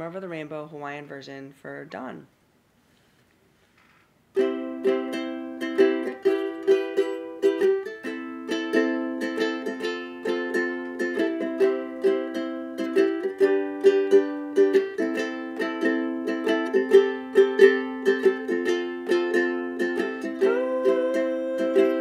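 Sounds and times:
strummed ukulele song: 4.4 - 22.0.

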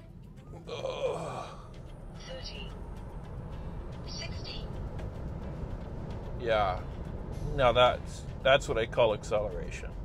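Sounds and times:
road and tyre rumble: 0.0 - 10.0.

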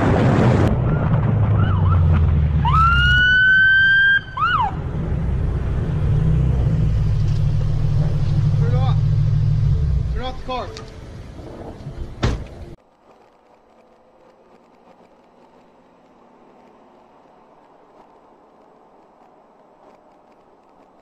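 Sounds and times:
car driving rumble: 0.0 - 21.0.

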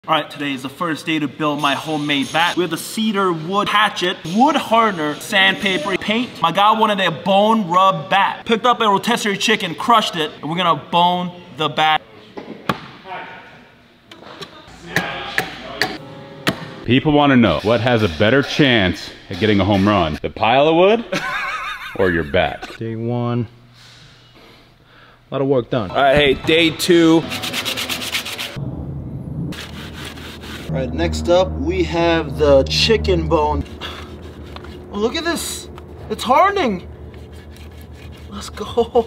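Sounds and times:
rag wiping wood: 27.2 - 28.6, 29.6 - 30.7, 33.6 - 35.3, 37.1 - 39.0
sandpaper scraping wood: 27.2 - 28.6, 29.6 - 30.7, 33.6 - 35.2, 37.1 - 39.0.

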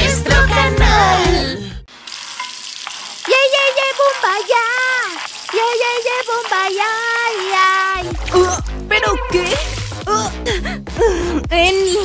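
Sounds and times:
shower spraying water: 1.9 - 10.1.

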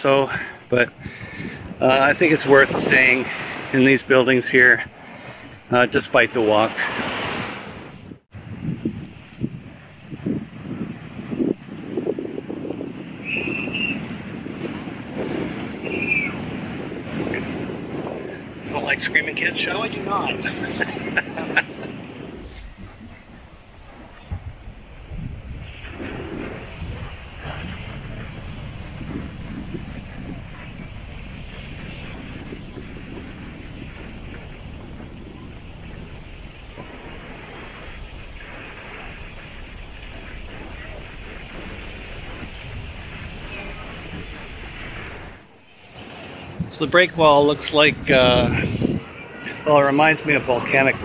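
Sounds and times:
small waves on rocky shore: 0.0 - 8.1, 9.2 - 51.0
wind buffeting microphone: 0.0 - 51.0.

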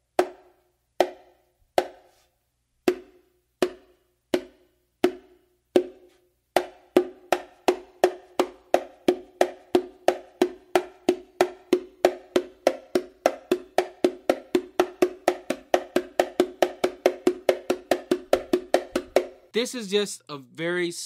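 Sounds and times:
hand slaps on bongo: 1.0 - 2.1.

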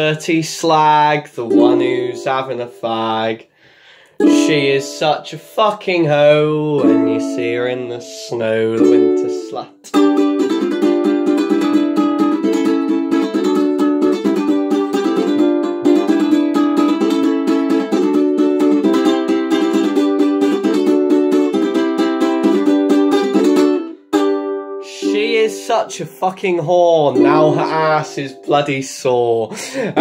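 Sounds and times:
ukulele strumming chords: 0.0 - 3.4, 4.2 - 30.0.

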